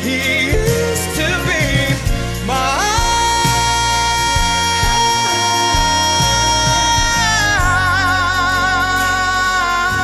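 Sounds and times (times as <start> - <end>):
band with drums and bass: 0.0 - 10.0
man singing long high note: 0.0 - 10.0.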